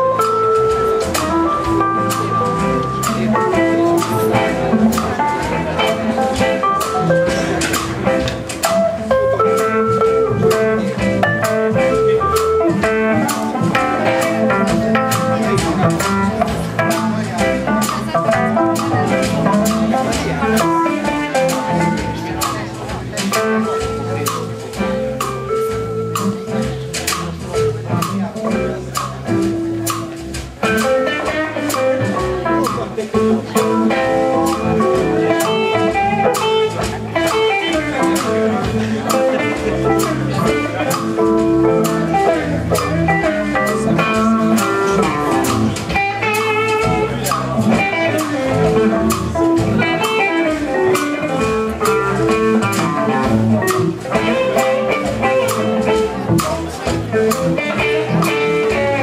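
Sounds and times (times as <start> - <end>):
blues band playing: 0.0 - 59.0
drum kit: 0.0 - 59.0
electric guitar: 0.0 - 59.0.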